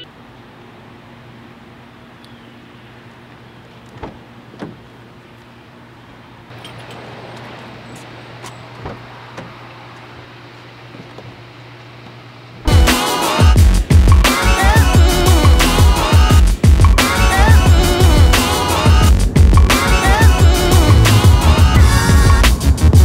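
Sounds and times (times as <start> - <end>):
soft thumps: 8.8 - 9.6
low hum: 13.6 - 23.0.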